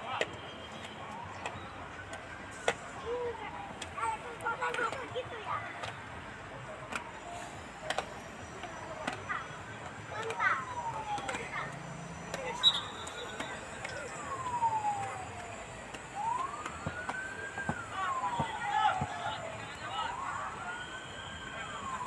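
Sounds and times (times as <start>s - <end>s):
faint voices: 0.0s - 22.0s
siren wailing: 6.1s - 22.0s.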